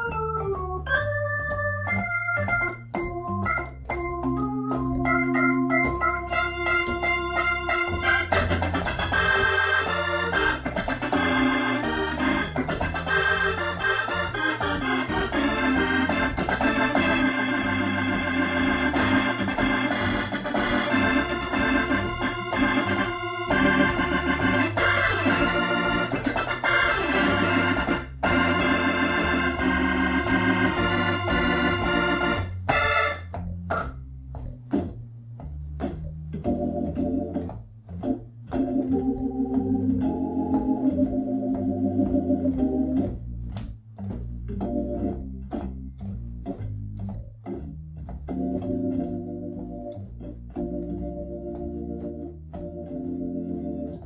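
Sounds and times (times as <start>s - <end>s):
loud organ playing blues chords: 0.0s - 54.0s.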